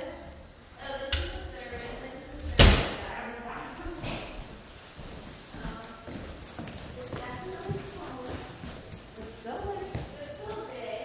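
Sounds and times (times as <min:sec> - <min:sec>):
voices talking quietly: 0:00.0 - 0:11.0
footsteps on hardwood floor: 0:03.8 - 0:10.9.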